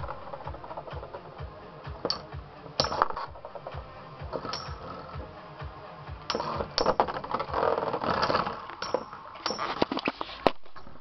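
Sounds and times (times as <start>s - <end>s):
spinning tops whirring: 0.0s - 5.4s
metallic clacks of colliding tops: 2.0s - 5.0s, 6.3s - 7.5s, 8.1s - 10.1s.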